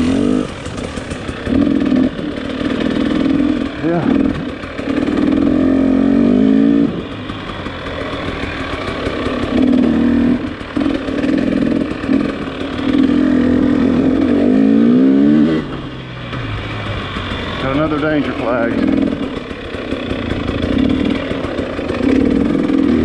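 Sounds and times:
dirt bike engine revving: 0.0 - 23.0.

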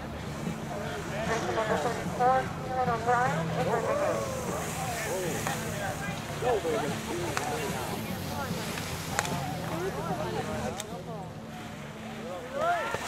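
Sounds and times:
onlookers calling out and talking: 0.0 - 13.0.

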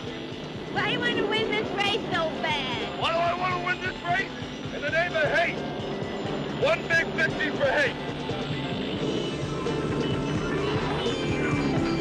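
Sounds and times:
film score music: 0.0 - 12.0
voices shouting and yelling: 0.7 - 5.7, 6.5 - 8.0.

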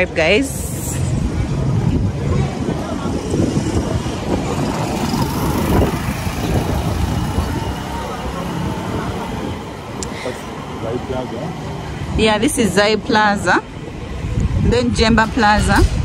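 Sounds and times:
low traffic rumble: 0.0 - 16.0
motorcycles passing close by: 1.1 - 12.8.

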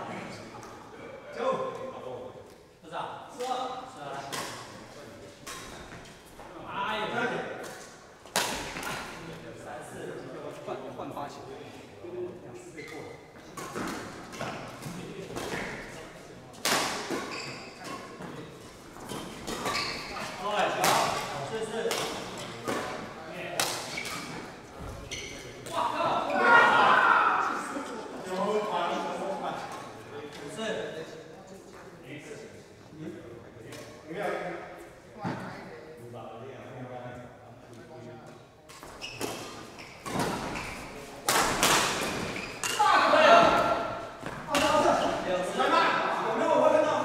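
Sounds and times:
racket hitting shuttlecock: 41.2 - 44.8
people talking: 44.5 - 47.0.

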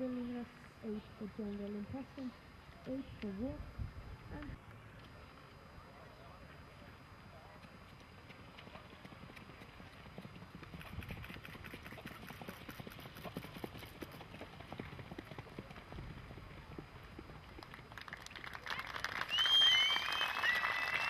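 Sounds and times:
horse hooves on sand: 7.4 - 17.9.

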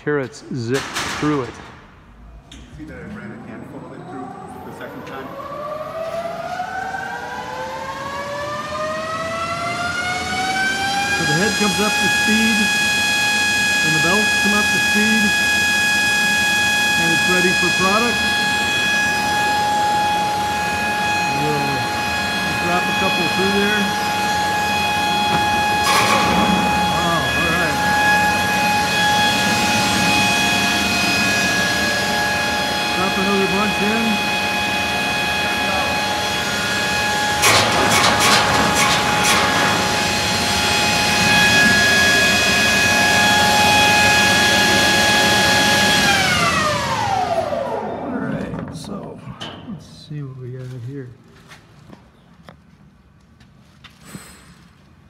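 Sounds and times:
slicer machine whine: 3.1 - 48.4.

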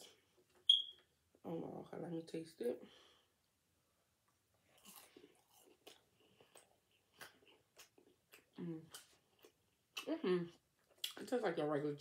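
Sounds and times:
close-up chewing: 4.6 - 10.1.

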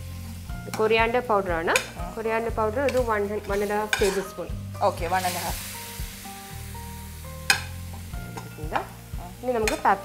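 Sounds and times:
food sizzling in pan: 0.0 - 10.0
metal spoon clinking on pan: 3.9 - 4.3.

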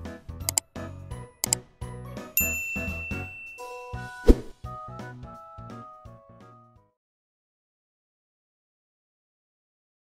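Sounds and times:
bright bell-like ding: 2.4 - 4.1.

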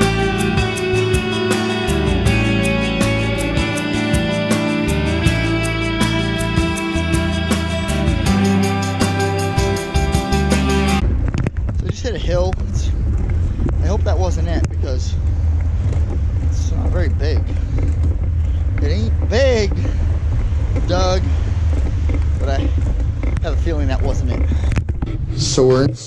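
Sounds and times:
wind rumble on microphone: 10.9 - 26.0
man speaking: 22.4 - 22.7, 25.4 - 26.0.

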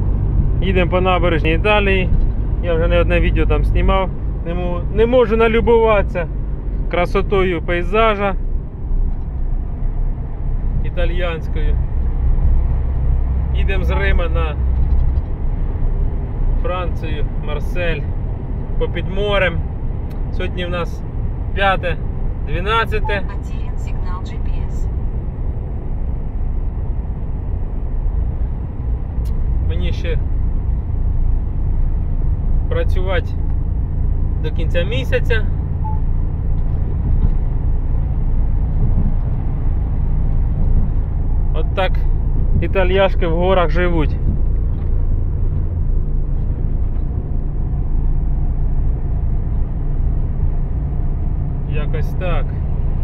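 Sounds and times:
vehicle engine and tyre rumble: 0.0 - 53.0.

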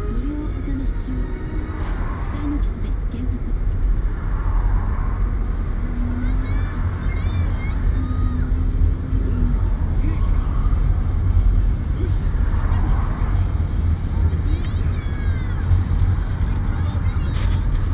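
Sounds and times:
car engine and tyres rumbling: 0.0 - 17.9
faint voices: 0.0 - 17.9.

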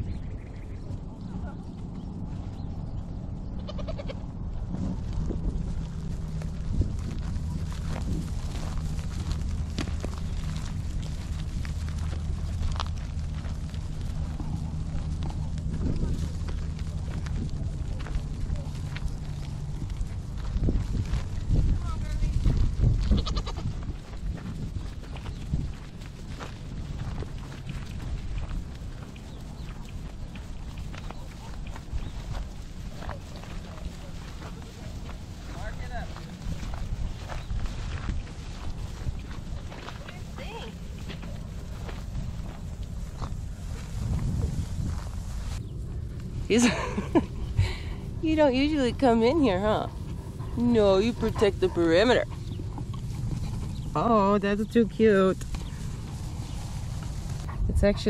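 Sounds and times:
low rumble: 0.0 - 58.0
goat bleat: 3.6 - 4.3, 23.0 - 23.8.

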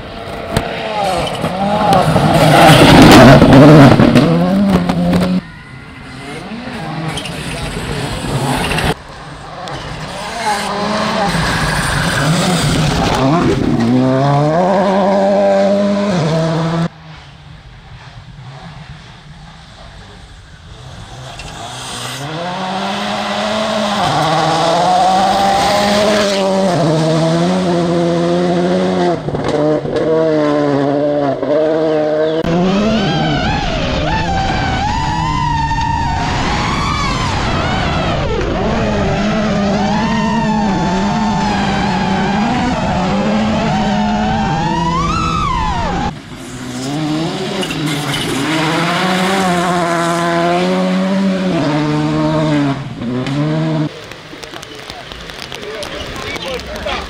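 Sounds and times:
rally car engines revving: 0.0 - 57.0
rally car passing at full throttle: 0.0 - 57.0
tyres on muddy dirt road: 0.0 - 57.0.

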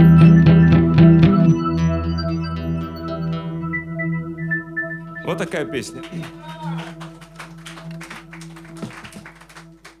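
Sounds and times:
audience applause: 6.0 - 10.0.

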